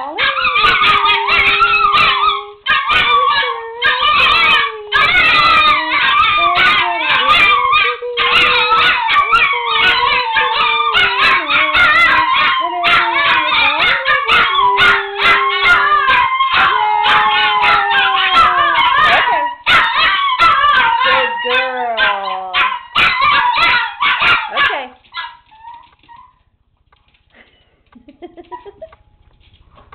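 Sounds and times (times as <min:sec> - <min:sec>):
dogs howling: 0:00.2 - 0:24.7
dog yips: 0:00.3 - 0:26.4.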